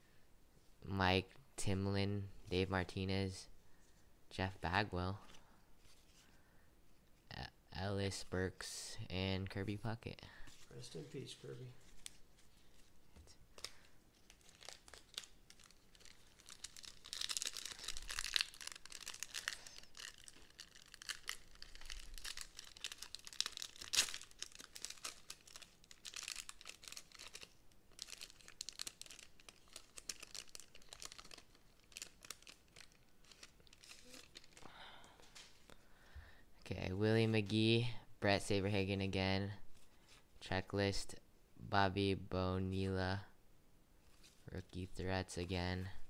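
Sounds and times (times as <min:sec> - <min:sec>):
foil wrapper tearing and crinkling: 0:13.6 - 0:34.6.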